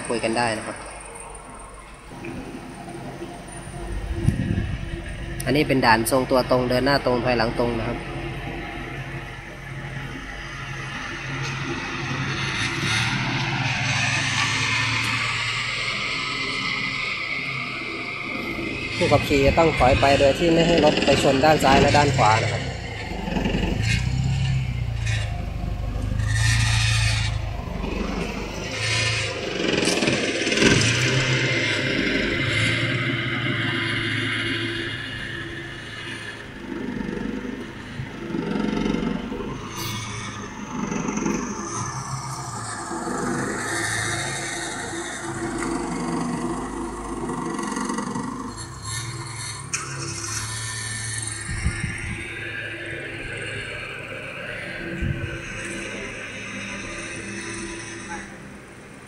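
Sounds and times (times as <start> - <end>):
car engine running at low speed: 0.0 - 59.0
low rumbling and hiss: 0.0 - 59.0.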